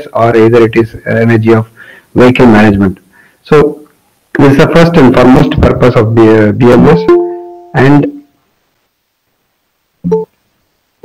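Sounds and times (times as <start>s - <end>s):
man speaking: 0.0s - 8.3s.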